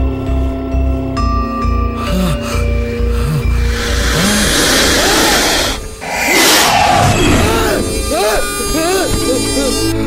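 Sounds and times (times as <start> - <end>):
dramatic background score: 0.0 - 10.0.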